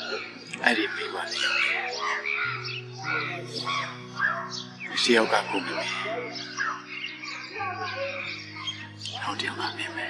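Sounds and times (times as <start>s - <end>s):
birds chirping: 0.0s - 10.0s
soft low chord music: 0.0s - 10.0s.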